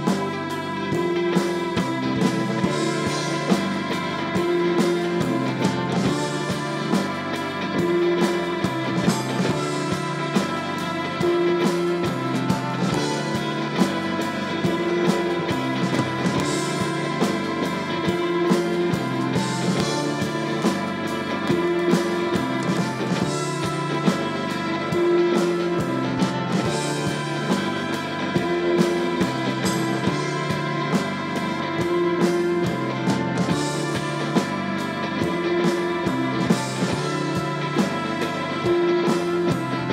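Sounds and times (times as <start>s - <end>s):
bass guitar: 0.0s - 39.9s
drum kit with cymbal crashes: 0.0s - 39.9s
electric guitars: 0.0s - 39.9s.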